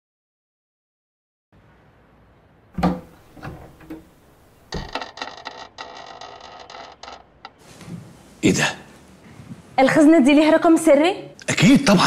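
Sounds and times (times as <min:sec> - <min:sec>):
picture frame knocks and clicks: 0:02.8 - 0:07.6.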